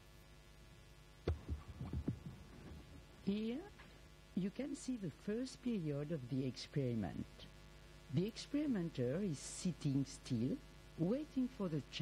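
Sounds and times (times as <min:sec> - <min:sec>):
faint steady hum: 0:00.0 - 0:12.0
dull low thumps: 0:01.3 - 0:03.1.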